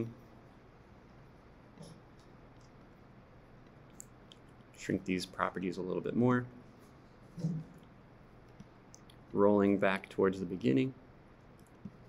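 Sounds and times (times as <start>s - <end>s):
low hum of a voice: 0.0s - 0.3s, 9.3s - 11.0s
computer mouse clicks: 7.8s - 9.2s.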